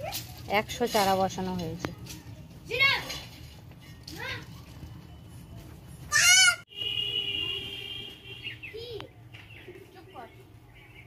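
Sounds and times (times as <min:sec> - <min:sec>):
goat bleating: 0:06.1 - 0:06.6.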